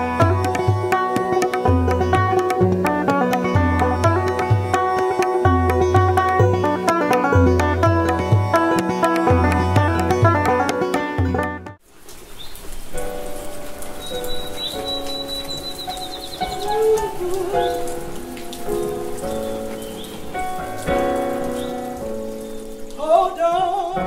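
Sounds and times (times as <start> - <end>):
steady rain: 0.0 - 10.9, 11.8 - 24.0
plucked string music: 0.0 - 11.8, 14.6 - 23.0
bird trilling: 14.0 - 18.0.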